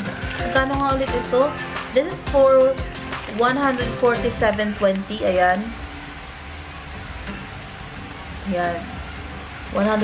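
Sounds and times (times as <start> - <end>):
room hum and hiss: 1.6 - 10.0.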